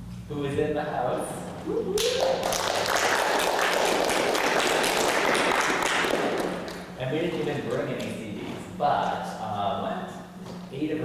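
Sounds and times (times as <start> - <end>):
audience applause: 2.0 - 6.8.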